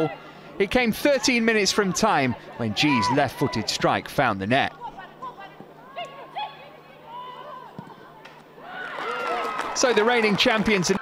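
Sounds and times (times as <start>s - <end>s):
players shouting: 1.0s - 3.8s
crowd cheering: 8.6s - 11.0s.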